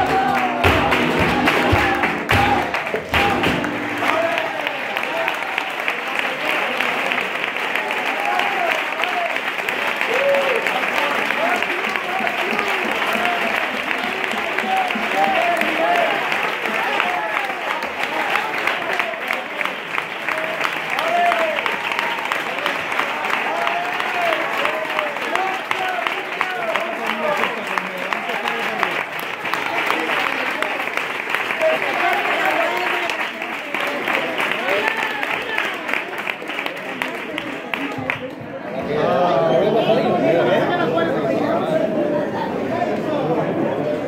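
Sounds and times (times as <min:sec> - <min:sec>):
flamenco guitar: 0:00.0 - 0:04.5
rhythmic hand-clapping: 0:00.0 - 0:38.7
audience shouts and cheers: 0:00.0 - 0:40.3
audience applause: 0:00.0 - 0:43.3.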